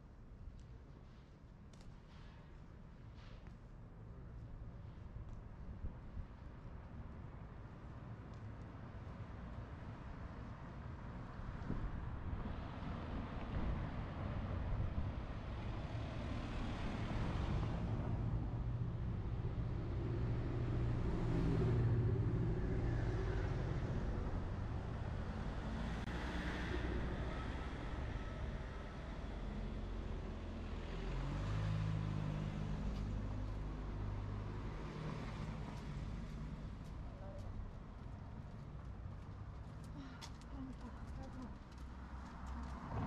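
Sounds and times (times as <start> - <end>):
cars passing: 11.3 - 43.0.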